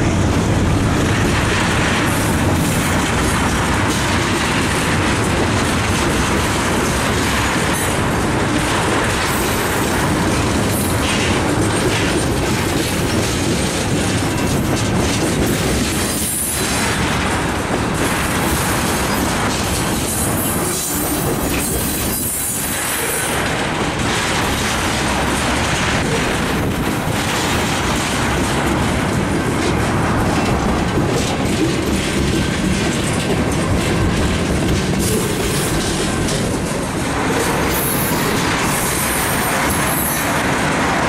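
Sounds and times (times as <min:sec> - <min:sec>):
train wheels rumbling on rails: 0:00.0 - 0:41.0.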